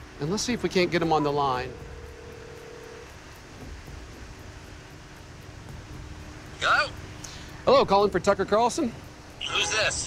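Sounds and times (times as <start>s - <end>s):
distant traffic hum: 0.0s - 10.0s.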